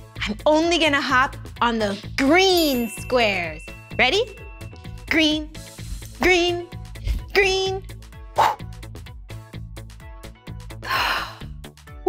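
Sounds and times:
upbeat children's music: 0.0s - 12.0s
breathy gasps: 10.8s - 11.6s.

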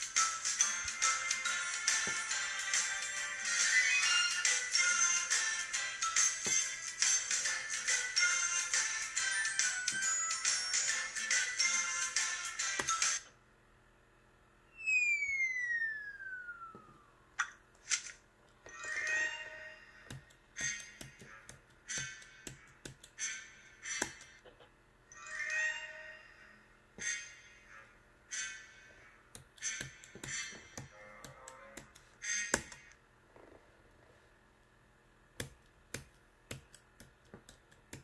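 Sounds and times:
downward gliding whistle tone: 14.7s - 17.2s.

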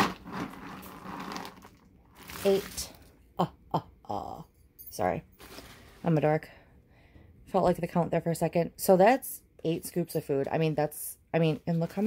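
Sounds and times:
dry kibble pouring into bag: 0.0s - 2.8s.

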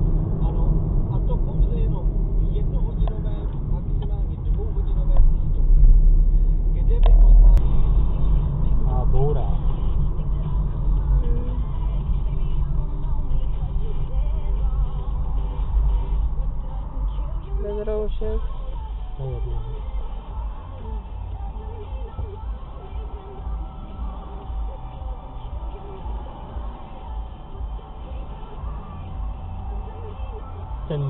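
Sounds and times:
car engine and tyres rumbling: 0.0s - 31.0s.

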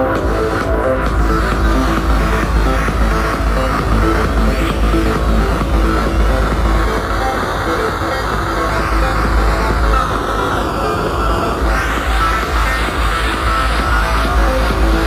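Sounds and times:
loud techno with heavy bass: 0.0s - 15.0s
sweeping synth sound: 0.0s - 15.0s.

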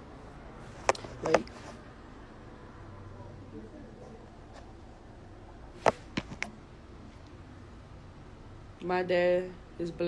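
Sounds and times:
phone handling knocks and clicks: 5.8s - 6.5s.

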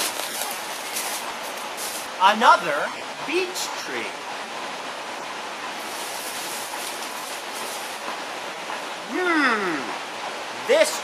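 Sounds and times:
rushing forest background hiss: 0.0s - 11.0s.

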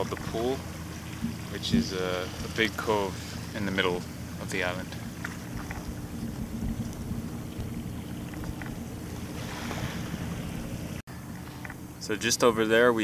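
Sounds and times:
wind rumbling on microphone: 0.0s - 2.8s, 4.9s - 12.0s
faint water sounds: 0.0s - 13.0s
soft rush of water: 0.0s - 13.0s.

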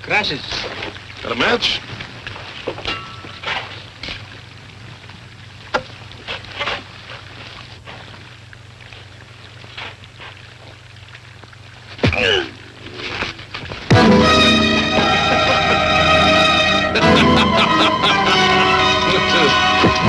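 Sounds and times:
low film soundtrack hum: 7.0s - 20.0s.

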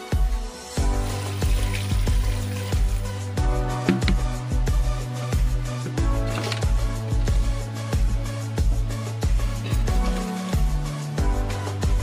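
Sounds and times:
background music with steady beat: 0.0s - 12.0s
water pouring onto dried leaves: 0.8s - 3.3s.

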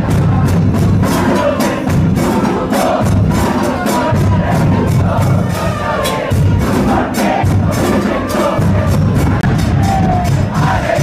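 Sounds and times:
football supporters chanting: 0.0s - 11.0s
percussion beat: 0.0s - 11.0s.

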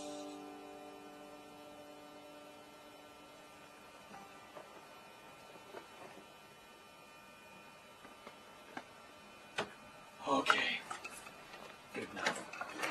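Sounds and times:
faint electrical hum: 0.0s - 12.9s.

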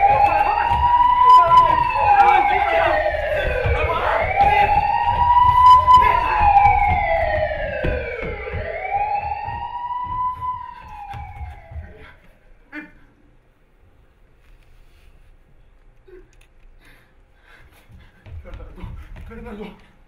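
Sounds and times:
wailing police siren: 0.0s - 12.3s.

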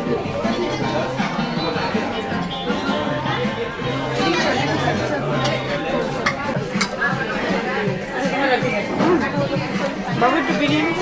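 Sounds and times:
chatter of people talking: 0.0s - 11.0s.

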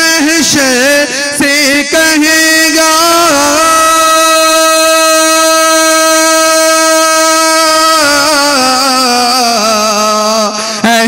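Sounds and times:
man singing long note: 0.0s - 11.0s.

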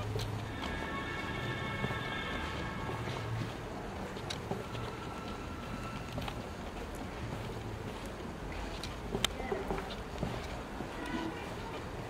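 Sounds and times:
footsteps on stone paving: 0.0s - 12.0s.

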